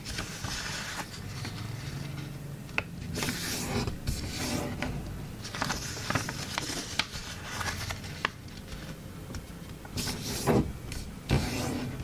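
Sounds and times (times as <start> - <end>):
paper rustling and sliding: 0.0 - 2.2, 3.2 - 9.0, 9.9 - 12.0.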